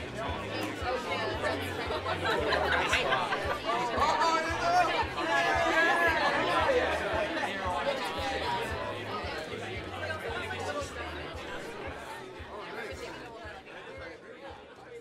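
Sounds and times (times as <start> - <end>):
background music with low beat: 0.0 - 15.0
overlapping voices chattering: 0.0 - 15.0.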